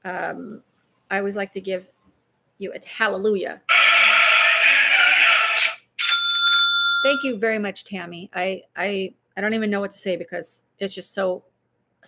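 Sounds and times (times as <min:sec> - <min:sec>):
bright bell ding: 0:06.0 - 0:07.4.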